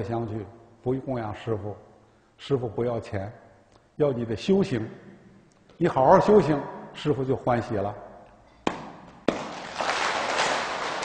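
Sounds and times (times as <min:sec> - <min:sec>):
audience applause: 0:09.4 - 0:11.0.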